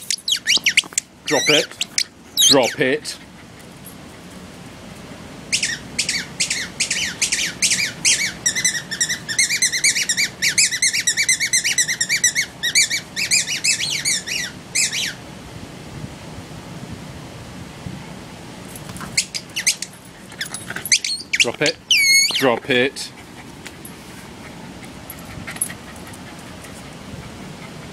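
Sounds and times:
small bird chirping: 0.0s - 2.7s, 20.9s - 22.4s.

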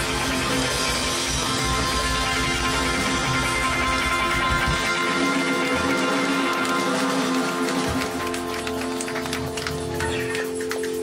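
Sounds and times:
rock band ringing chord: 0.0s - 10.8s
sharp claps: 5.1s - 11.0s.

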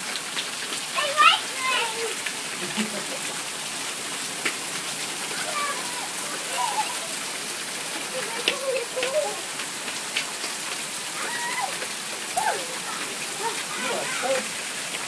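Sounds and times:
rain on gravel and pavement: 0.0s - 15.0s
sharp taps of raindrops: 0.0s - 15.0s.

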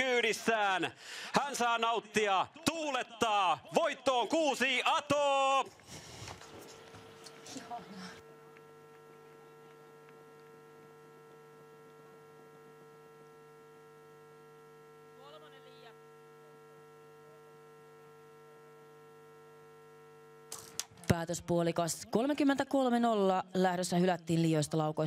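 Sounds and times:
electrical mains hum: 0.0s - 25.0s.

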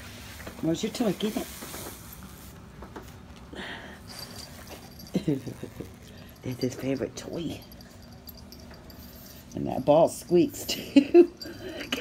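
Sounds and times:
person laughing: 5.1s - 6.0s.

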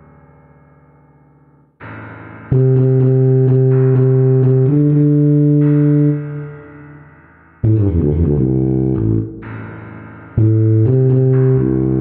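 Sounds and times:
backing track: 1.8s - 12.0s
synthesized tuba notes: 2.5s - 6.7s, 7.6s - 9.5s, 10.4s - 12.0s.

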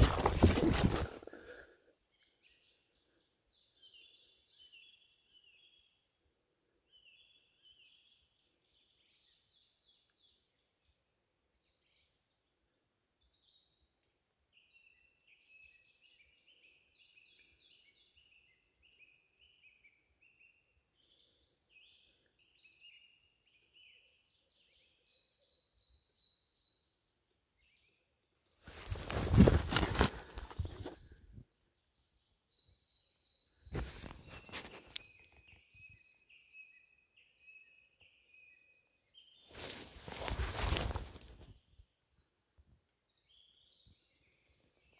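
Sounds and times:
rustling handling noise: 0.0s - 1.4s, 28.7s - 31.0s, 39.5s - 41.5s
faint birdsong: 0.0s - 44.9s.

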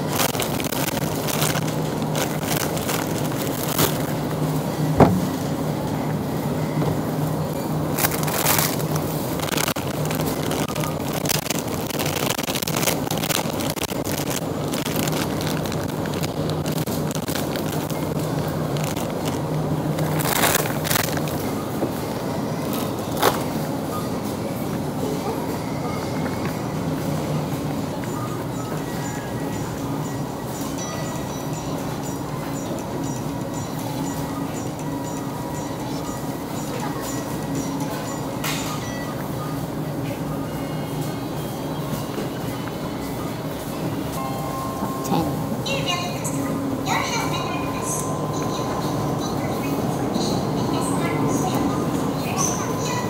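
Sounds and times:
shopping trolley rolling on tiles: 0.0s - 44.6s
freezers humming: 0.0s - 53.0s.

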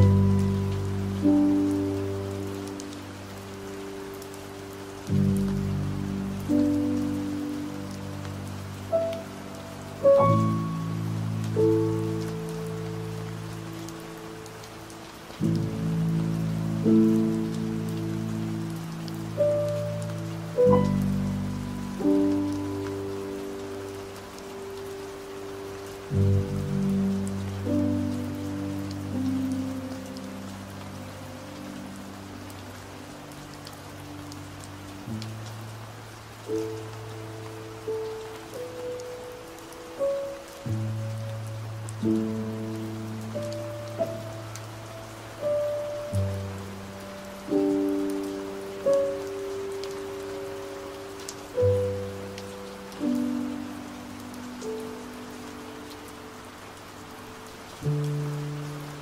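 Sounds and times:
slow piano chords: 0.0s - 59.0s
steady rain: 0.0s - 59.0s.

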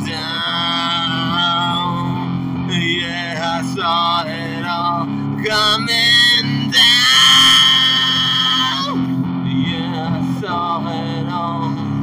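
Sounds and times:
guitar accompaniment: 0.0s - 12.0s.

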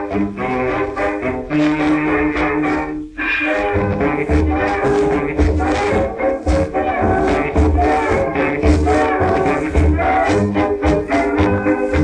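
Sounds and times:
dance orchestra on old record: 0.0s - 12.0s.

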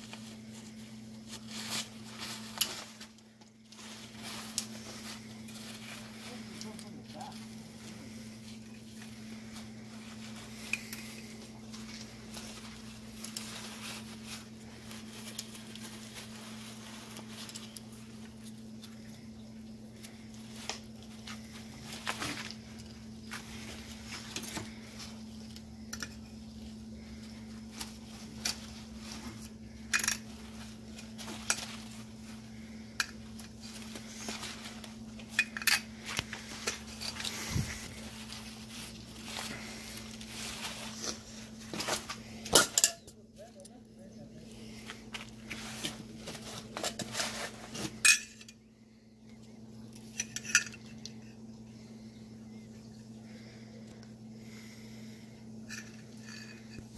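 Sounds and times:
low hum: 0.0s - 56.9s
pliers clinking on metal: 42.6s - 43.1s.

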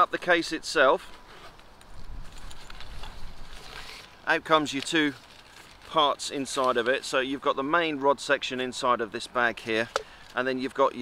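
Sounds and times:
fabric rustle: 1.0s - 7.1s.

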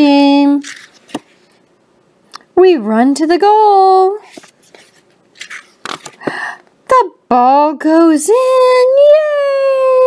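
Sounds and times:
page turning rustles: 0.6s - 1.5s, 4.2s - 6.3s.

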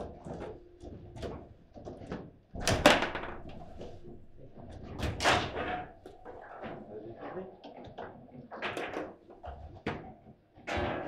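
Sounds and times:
foosball ball and rods clicking: 0.1s - 6.6s
foosball table bang: 2.6s - 3.6s.

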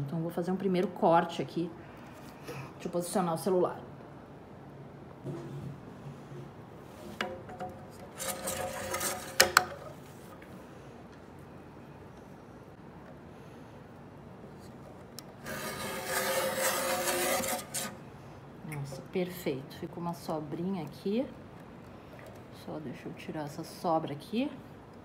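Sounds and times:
blade carriage sliding on rail: 8.1s - 9.6s, 15.4s - 18.0s
rotary blade cutting paper: 8.1s - 9.6s, 15.4s - 18.0s.

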